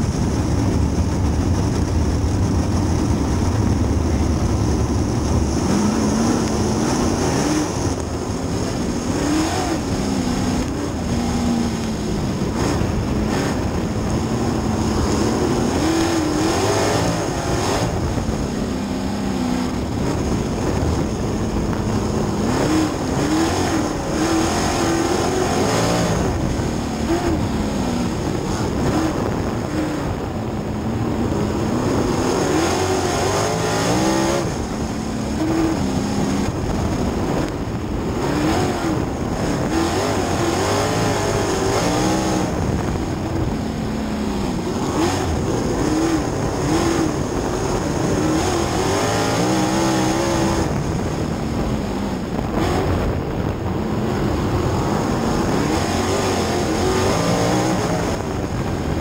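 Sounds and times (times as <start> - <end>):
race car engine revving: 0.0 - 59.0
steady rushing noise: 0.0 - 59.0.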